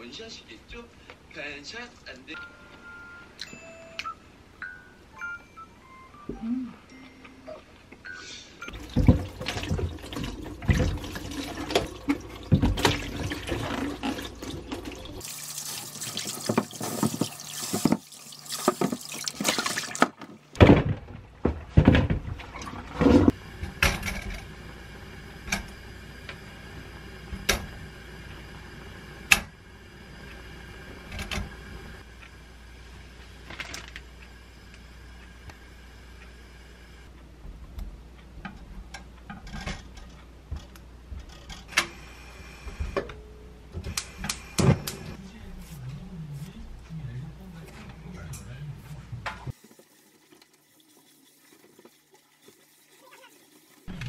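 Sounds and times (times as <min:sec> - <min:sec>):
water splashing: 0:08.7 - 0:20.2
tap running into sink: 0:16.0 - 0:20.3.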